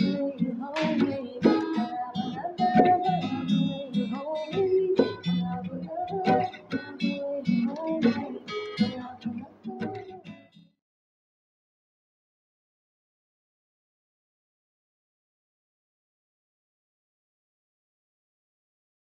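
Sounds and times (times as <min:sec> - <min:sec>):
acoustic guitar strumming: 0:00.0 - 0:10.7.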